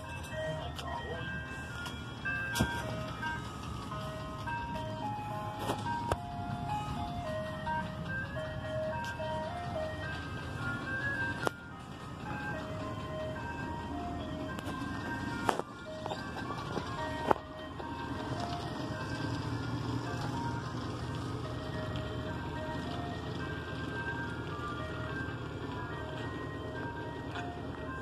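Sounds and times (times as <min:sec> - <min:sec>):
ice cream truck jingle: 0:00.0 - 0:28.0
truck engine running: 0:00.0 - 0:28.0.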